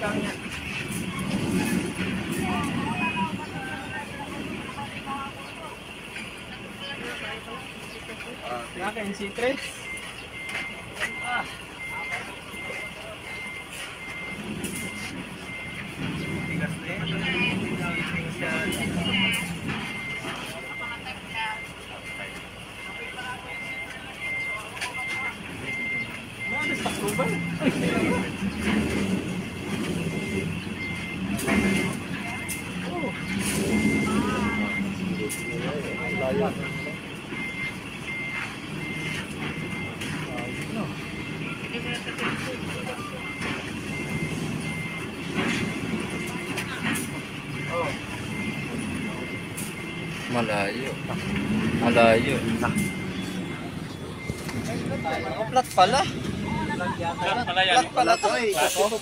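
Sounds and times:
diesel engine running: 0.0s - 59.0s
truck reverse alarm beeping: 0.0s - 59.0s.

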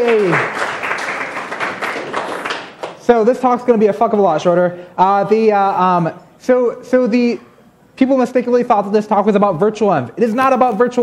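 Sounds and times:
audience applauding: 0.0s - 3.0s.

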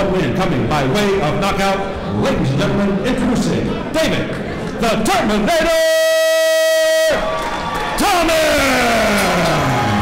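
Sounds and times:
crowd cheering: 6.6s - 10.0s.

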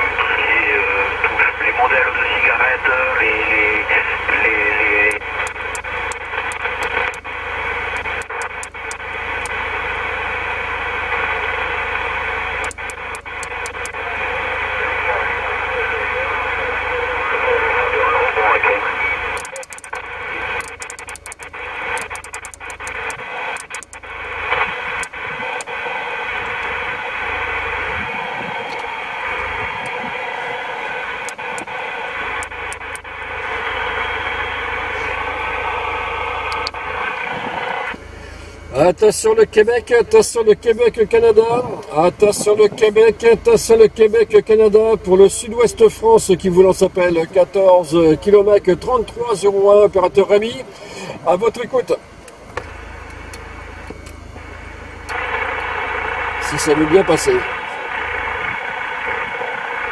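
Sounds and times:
garbled radio voices: 0.0s - 53.4s, 55.1s - 59.9s
radio receiver hissing: 0.0s - 59.9s
sharp clicks and crackles: 4.5s - 7.3s, 7.9s - 9.6s, 12.6s - 14.0s, 19.3s - 25.8s, 28.6s - 30.1s, 31.2s - 33.2s, 36.4s - 36.8s.

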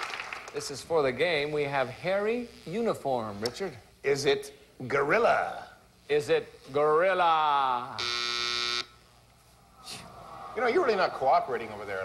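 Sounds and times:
game show buzzer: 7.8s - 9.0s.

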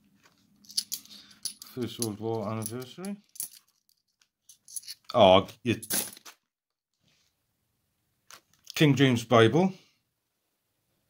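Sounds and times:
coins clicking together: 0.7s - 5.1s.

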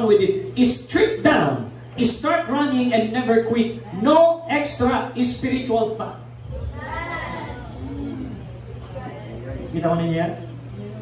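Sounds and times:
steady low hum: 0.0s - 11.0s
lower cry: 6.5s - 8.7s.

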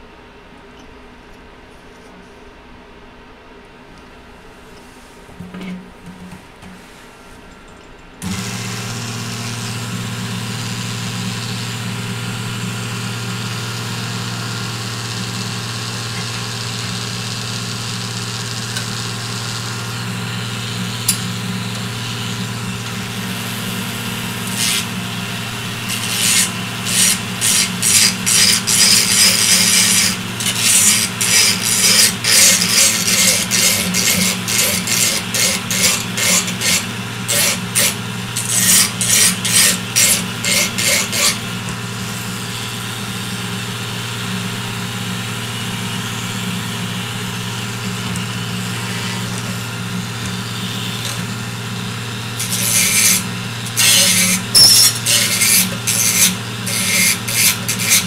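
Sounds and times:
low machine hum: 3.6s - 57.9s
metal hand tool scraping plastic: 25.9s - 41.4s.

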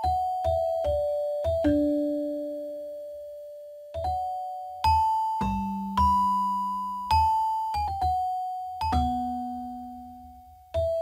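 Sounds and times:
slow bell-like keyboard notes: 0.0s - 11.0s.

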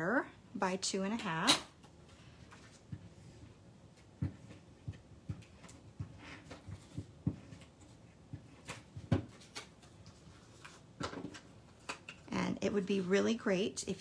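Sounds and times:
cardstock rustling: 5.4s - 12.2s.

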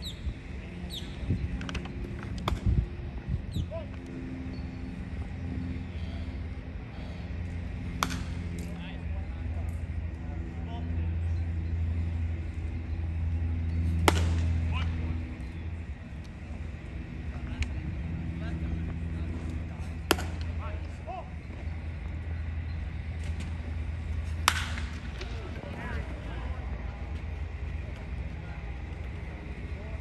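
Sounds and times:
murmur of background chatter: 0.4s - 30.0s
baseball smacking into mitt: 2.4s - 2.7s, 7.9s - 8.7s, 14.0s - 14.5s, 20.0s - 20.5s, 24.4s - 25.0s.

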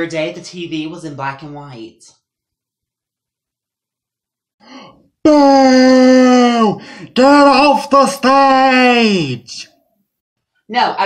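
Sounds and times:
person grunting: 4.6s - 7.7s
person speaking: 5.3s - 9.8s.

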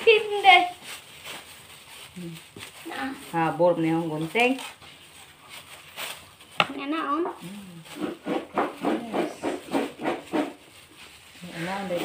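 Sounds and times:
plastic wrappers crinkling: 0.0s - 12.0s.

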